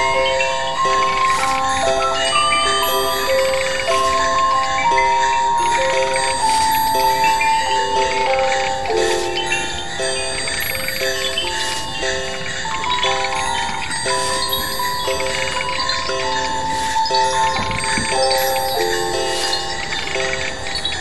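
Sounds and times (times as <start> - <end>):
bell-like electronic tones: 0.0 - 21.0.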